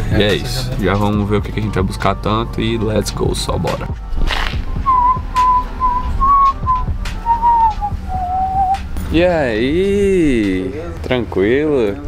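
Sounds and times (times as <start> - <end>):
person whistling a tune: 4.8 - 8.9.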